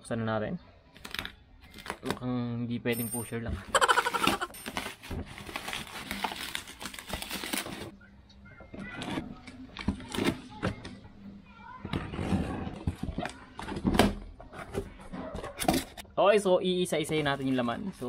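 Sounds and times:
bubble wrap crinkling: 3.8s - 7.9s.

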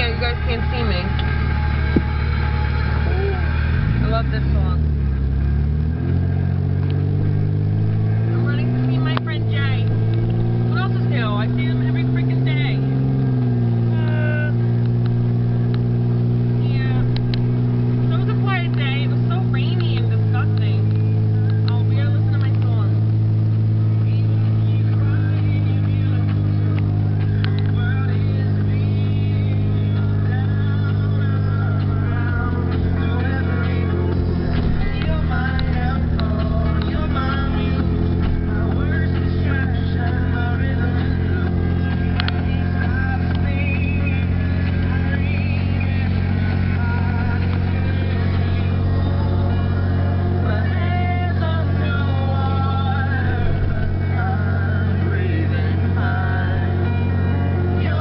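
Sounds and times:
car engine and road drone: 0.0s - 58.0s
pop song on car stereo: 0.0s - 58.0s.

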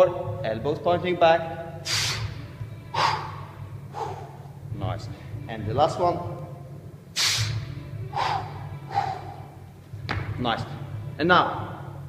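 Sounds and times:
quiet background music: 0.0s - 12.0s
man's forceful breaths: 1.8s - 5.4s, 7.2s - 9.6s.

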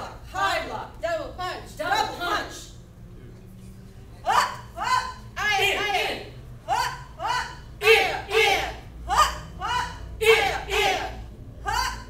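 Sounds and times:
sharp vocal shouts: 4.2s - 12.0s.

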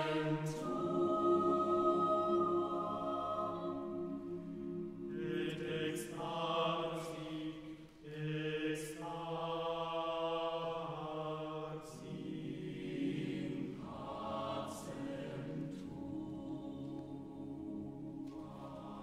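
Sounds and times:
choir singing a cappella: 0.0s - 19.0s.

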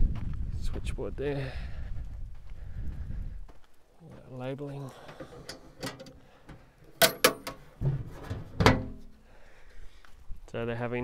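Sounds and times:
dull thud of lid shutting: 7.0s - 9.1s
metal lid knocking: 7.0s - 9.1s.

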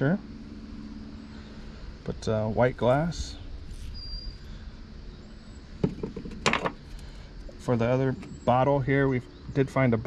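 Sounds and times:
glass knocking on metal: 5.8s - 6.7s.

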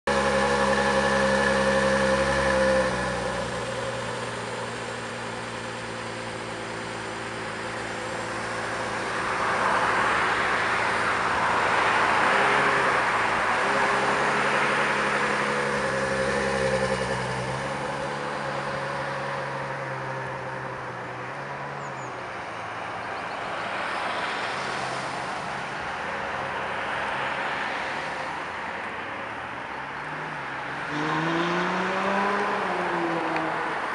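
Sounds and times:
car engine idling: 0.0s - 12.2s.

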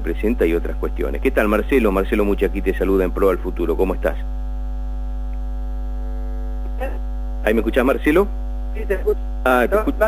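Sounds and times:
higher electrical buzzing tone: 0.0s - 10.0s
low mains drone: 0.0s - 10.0s.

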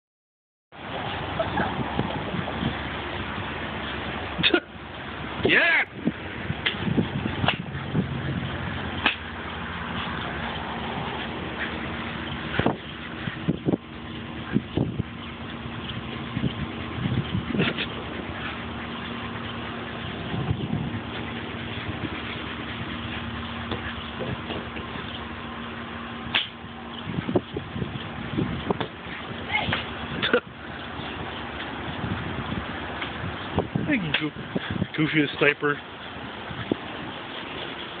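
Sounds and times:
steady background hum: 0.8s - 38.0s.

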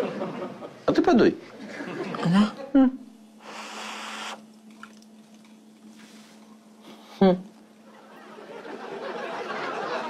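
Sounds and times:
faint steady hum: 0.0s - 10.0s
person blowing on food: 3.4s - 4.5s.

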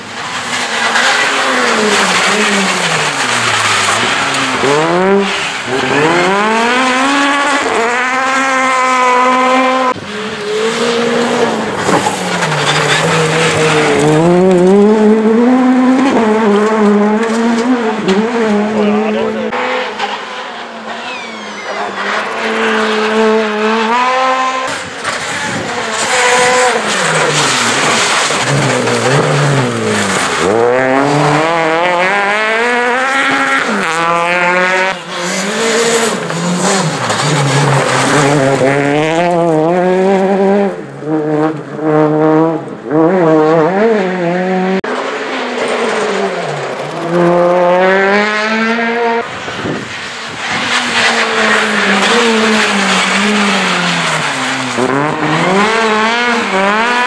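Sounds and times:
tyres rushing on loose gravel: 0.0s - 8.5s, 10.0s - 17.7s, 24.6s - 40.2s, 49.3s - 57.0s
rally car engines revving: 0.0s - 57.0s.

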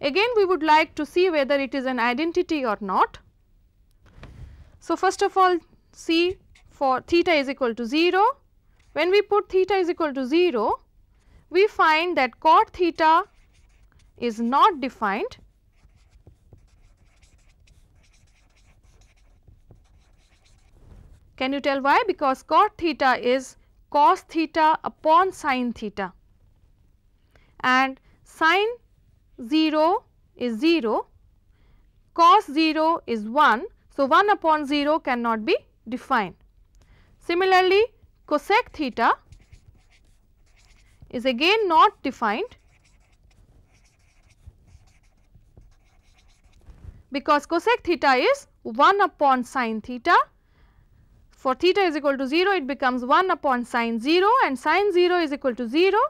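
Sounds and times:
felt-tip marker scratching on paper: 6.1s - 6.9s, 12.6s - 21.3s, 38.3s - 47.0s.

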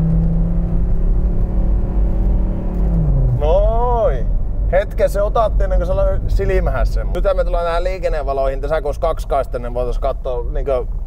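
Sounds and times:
car engine and road rumble: 0.0s - 11.0s
man speaking: 3.4s - 10.9s.

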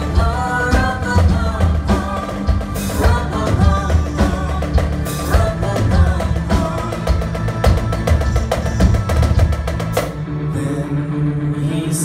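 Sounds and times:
fast drum rolls: 0.0s - 10.2s
live band playing: 0.0s - 12.0s.

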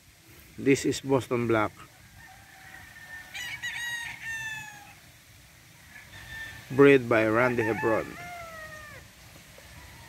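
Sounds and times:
rooster crowing: 2.0s - 5.0s, 5.8s - 10.0s.

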